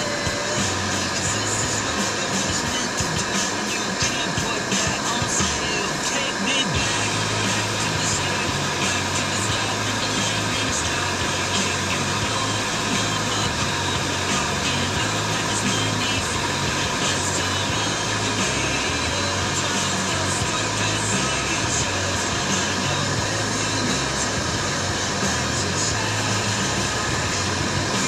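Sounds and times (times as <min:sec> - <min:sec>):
car radio playing a song: 0:00.0 - 0:28.0
steady bass line: 0:00.0 - 0:28.0.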